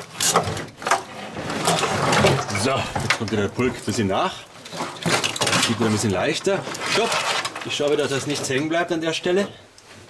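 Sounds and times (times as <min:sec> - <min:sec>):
wires rustling and knocking on metal: 0:00.0 - 0:10.0.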